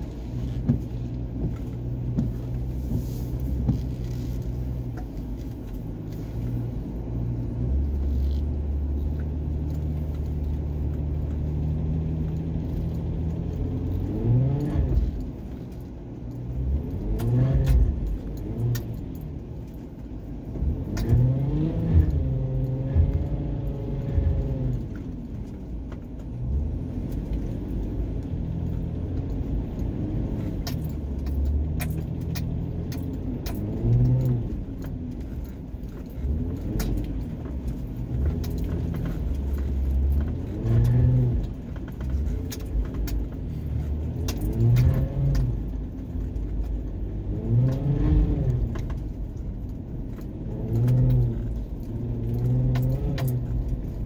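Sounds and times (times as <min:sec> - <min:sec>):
light rattles and clicks: 0:00.0 - 0:54.0
vehicle engine revving: 0:06.5 - 0:15.3, 0:16.5 - 0:19.2, 0:20.6 - 0:25.1, 0:26.4 - 0:54.0.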